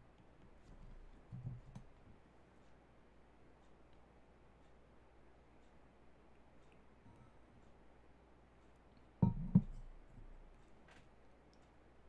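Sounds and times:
faint low bump: 9.2s - 10.4s.

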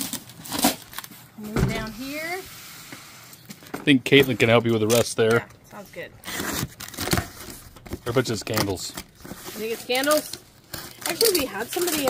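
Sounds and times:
rustling of tape and cardboard: 0.0s - 12.0s.

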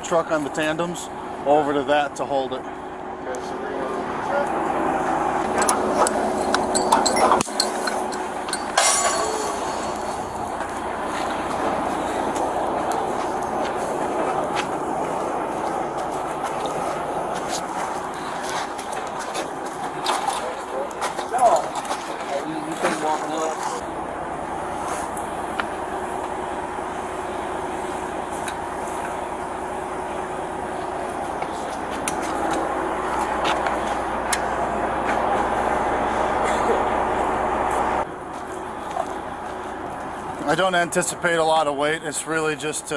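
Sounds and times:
diesel truck engines running: 0.0s - 42.9s
metallic clicks and clinks: 5.6s - 10.4s.

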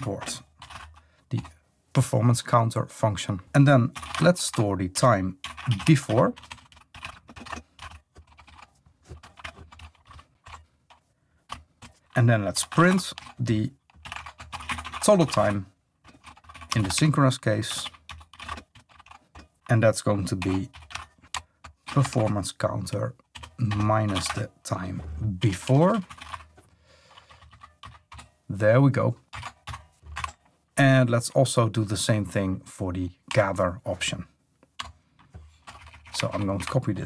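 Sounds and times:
typing on computer keyboard: 0.0s - 1.5s, 3.9s - 24.5s, 25.6s - 28.4s, 29.2s - 30.4s, 34.7s - 37.0s.

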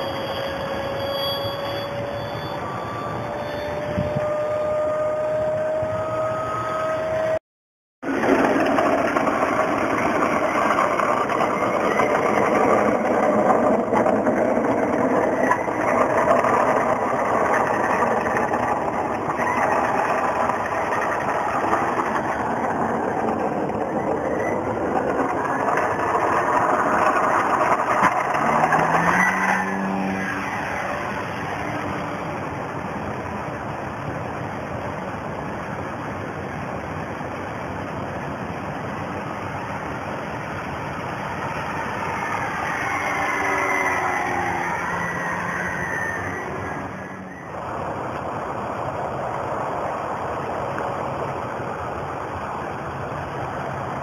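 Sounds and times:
model airplane motor and propeller: 8.1s - 54.0s.

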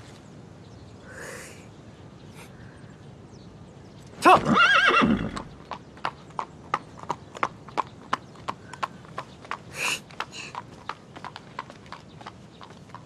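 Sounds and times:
horse whinnying: 4.2s - 5.5s
hooves clip-clopping: 5.3s - 13.0s.

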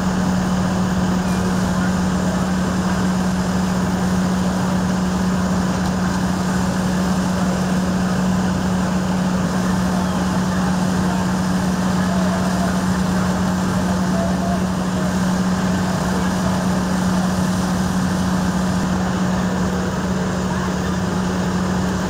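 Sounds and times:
fire engine running: 0.0s - 22.0s.

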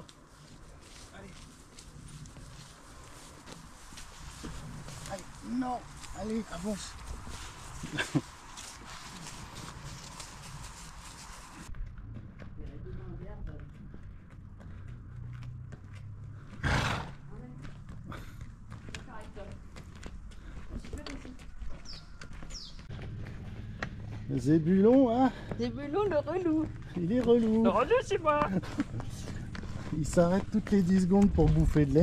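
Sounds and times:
donkey hooves clopping on asphalt: 0.0s - 32.0s.

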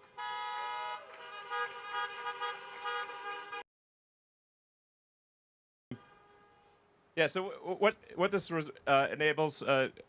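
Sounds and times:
many car horns honking: 0.0s - 3.7s, 5.9s - 6.8s.

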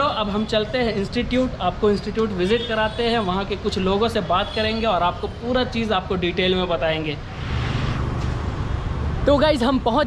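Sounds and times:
vehicle passing with rumble: 7.2s - 9.5s.

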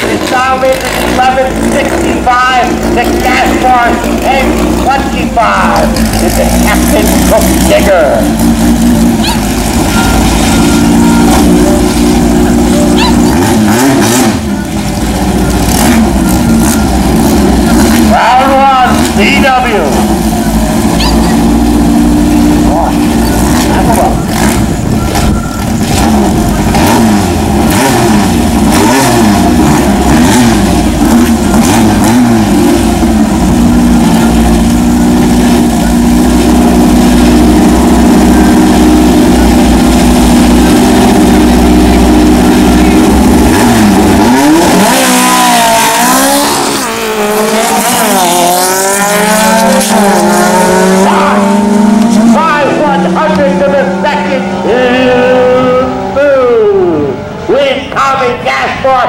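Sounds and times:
car accelerating through gears: 0.0s - 57.6s
car engine idling and revving: 0.0s - 59.0s.

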